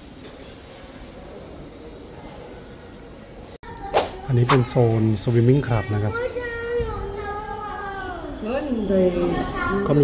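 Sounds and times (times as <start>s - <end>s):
man speaking: 4.3s - 6.1s.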